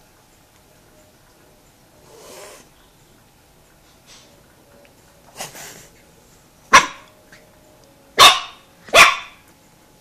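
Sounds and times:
puppy barking: 6.7s - 7.1s, 8.2s - 9.4s.

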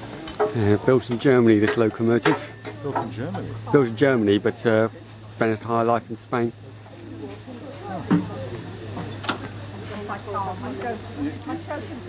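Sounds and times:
steam locomotive hissing: 0.0s - 12.0s.

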